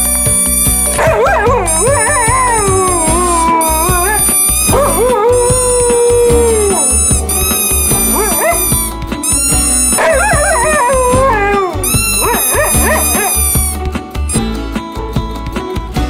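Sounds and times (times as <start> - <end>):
background music: 0.0 - 16.0
huskies howling: 0.9 - 8.9, 9.8 - 13.4.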